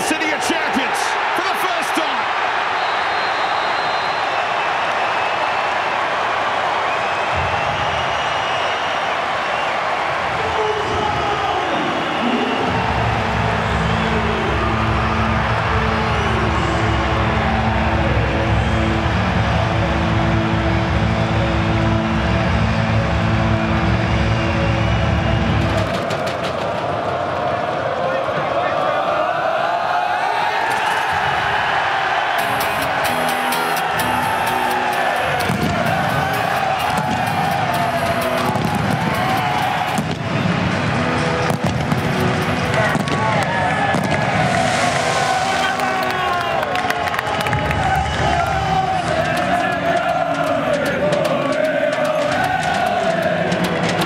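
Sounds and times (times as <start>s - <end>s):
stadium crowd cheering: 0.0s - 54.0s
referee whistle: 2.7s - 5.4s.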